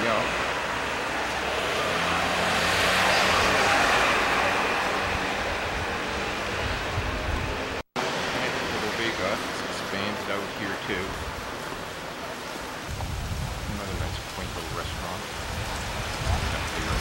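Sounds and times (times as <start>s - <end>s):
faint voices of passers-by: 0.0s - 17.0s
passing vehicle: 0.0s - 17.0s
street traffic noise: 0.0s - 17.0s.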